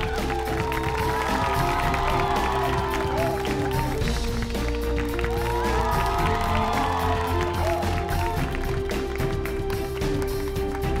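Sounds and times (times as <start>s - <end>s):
quiz show theme music: 0.0s - 11.0s.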